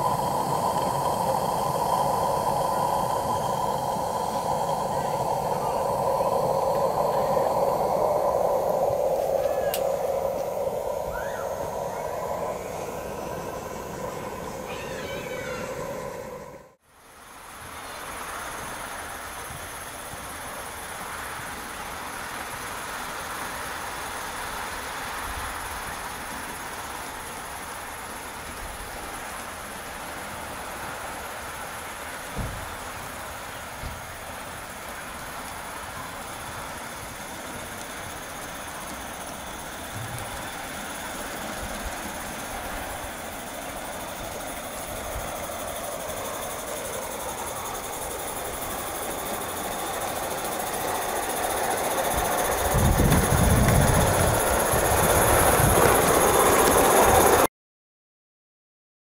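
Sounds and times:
model steam locomotive running: 0.0s - 57.5s.

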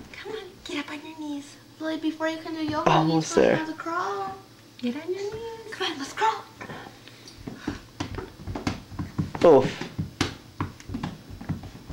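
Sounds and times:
soft taps and knocks: 7.4s - 11.9s.

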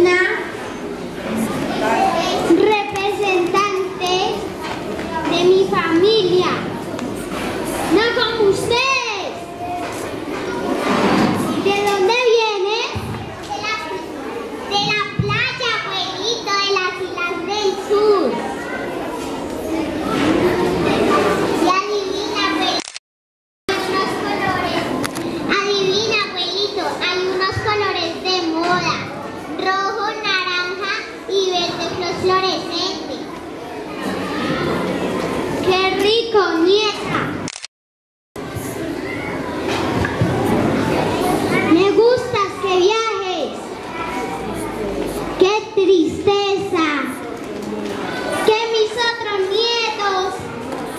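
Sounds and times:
high child's voice: 0.0s - 0.6s, 1.5s - 22.9s, 23.7s - 34.9s, 35.5s - 37.6s, 40.8s - 47.4s, 48.1s - 50.9s
children chattering and calling: 0.0s - 23.0s, 23.7s - 37.6s, 38.4s - 50.9s.

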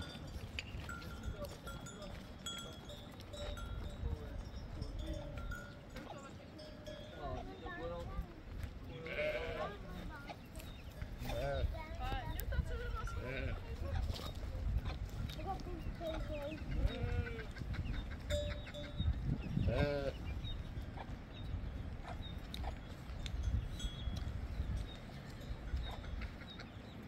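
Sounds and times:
sheep and goats bleating: 8.8s - 10.1s, 11.2s - 12.1s, 12.9s - 14.0s, 15.6s - 20.4s.

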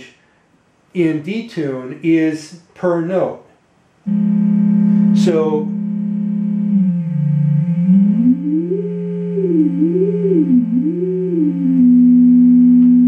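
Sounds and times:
detuned synthesizer tone stepping: 4.0s - 13.0s
steady low synthesizer tone: 4.0s - 13.0s.

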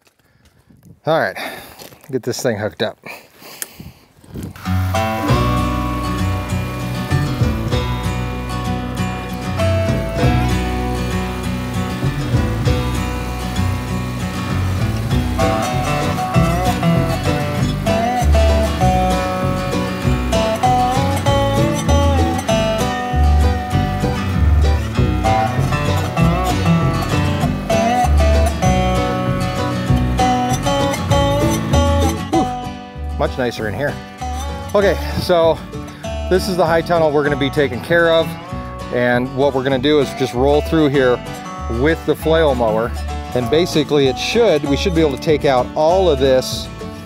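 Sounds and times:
melody over bass pulse: 4.6s - 33.1s.

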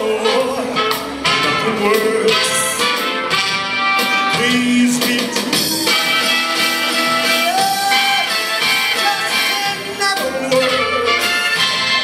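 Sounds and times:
man singing into microphone: 0.0s - 3.0s, 4.1s - 6.2s, 7.3s - 11.6s
instrumental accompaniment: 0.0s - 12.0s.

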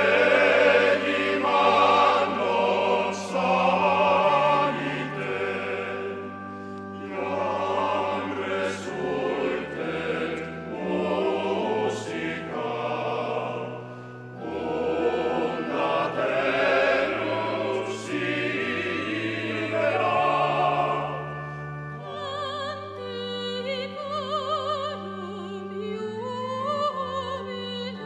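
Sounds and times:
choir singing held notes: 0.0s - 23.6s.

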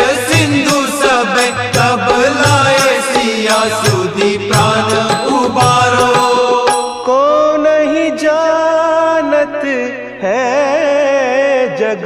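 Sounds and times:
steady drum beat: 0.0s - 6.8s.

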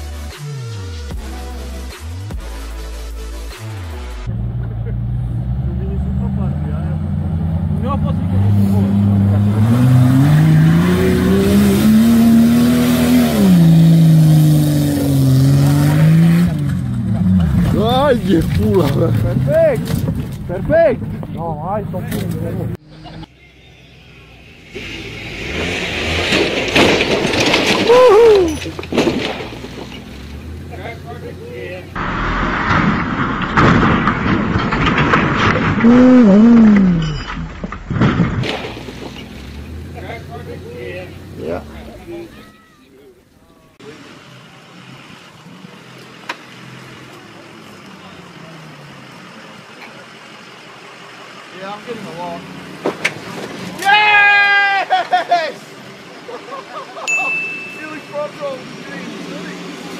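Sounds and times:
vehicle engine revving: 3.6s - 33.2s, 33.8s - 42.4s
vehicle rolling over clattering: 15.0s - 22.8s, 24.7s - 42.3s, 49.6s - 54.0s
people shouting: 27.9s - 28.6s, 42.1s - 43.0s, 53.8s - 55.0s.

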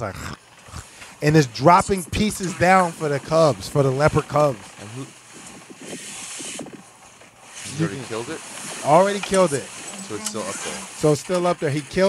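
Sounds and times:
faint voices from phone speaker: 10.0s - 11.1s.

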